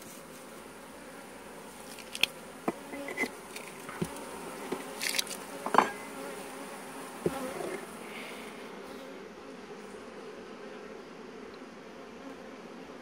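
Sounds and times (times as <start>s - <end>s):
honeybees buzzing: 0.0s - 13.0s.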